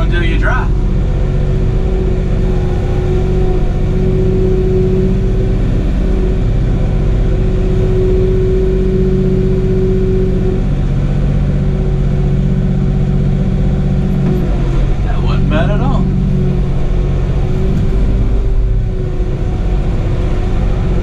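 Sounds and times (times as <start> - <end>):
steady whine: 0.0 - 21.0
tractor engine running: 0.0 - 21.0.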